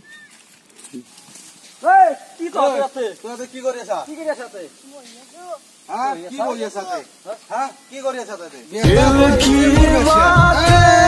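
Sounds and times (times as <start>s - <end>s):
person shouting exclamation: 1.8s - 2.4s.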